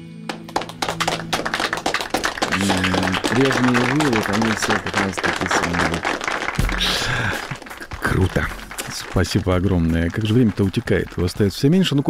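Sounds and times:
people clapping: 0.2 - 12.0
man talking: 2.5 - 12.0.

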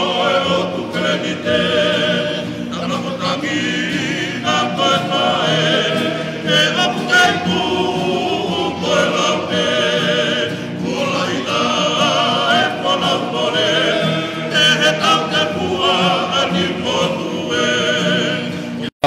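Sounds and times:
choir singing in harmony: 0.0 - 19.0.

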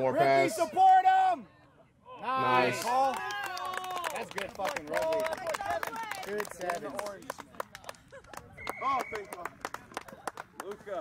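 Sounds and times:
rugby players calling: 0.0 - 1.5, 2.1 - 3.6.

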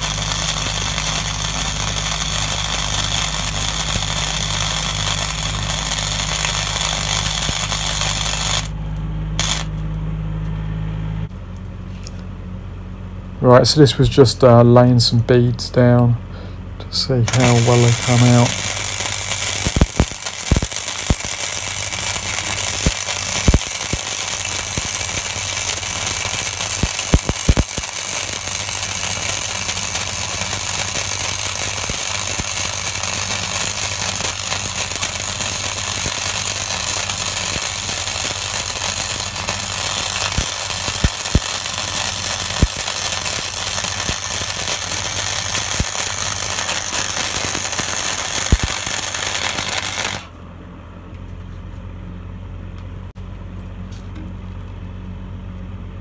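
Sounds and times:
welding arc crackling: 0.0 - 9.9, 17.3 - 50.4
low welder hum: 0.0 - 56.0.

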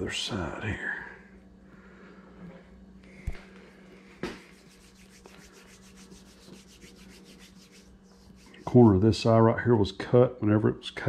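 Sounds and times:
steady low hum: 0.0 - 11.0
hands rubbing: 4.0 - 9.0
sculpting tool strokes: 4.3 - 9.0.

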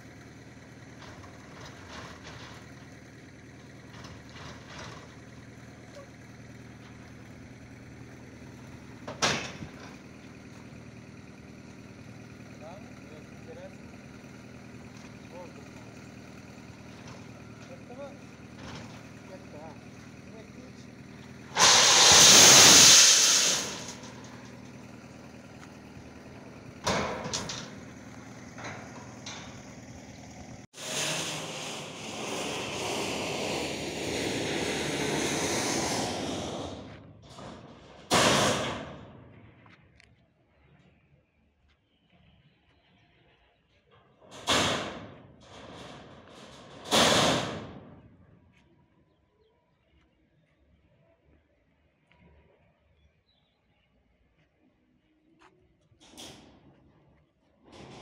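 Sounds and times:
loud rush of noise: 21.5 - 24.1.

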